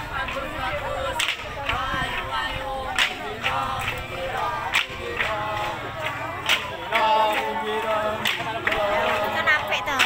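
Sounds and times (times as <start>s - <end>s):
parade music with singing: 0.0s - 10.0s.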